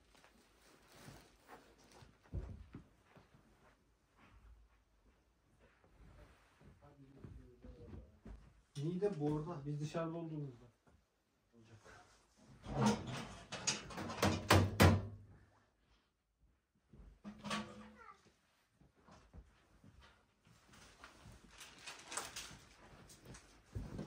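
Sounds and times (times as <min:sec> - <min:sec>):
fabric cover rustling and flapping: 0:00.0 - 0:07.2, 0:18.9 - 0:24.0.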